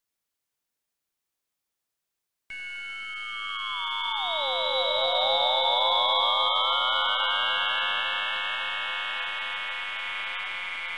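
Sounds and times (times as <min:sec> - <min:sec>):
steady high electronic tone: 0:02.6 - 0:10.9.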